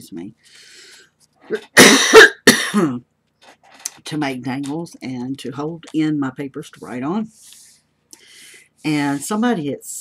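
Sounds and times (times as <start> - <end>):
woman coughing hard: 1.5 - 3.0.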